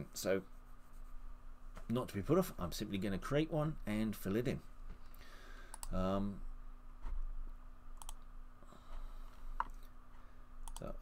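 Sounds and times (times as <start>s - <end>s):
faint electrical hum: 0.0s - 11.0s
computer mouse clicks: 5.7s - 6.0s, 8.0s - 8.2s, 10.6s - 10.9s.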